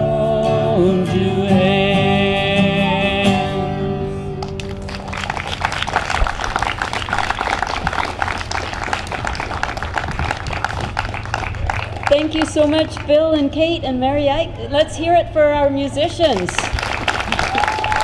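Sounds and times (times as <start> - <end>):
person singing: 0.0 - 4.3
acoustic guitar chord: 0.0 - 5.1
audience applauding: 4.4 - 13.1, 16.6 - 18.0.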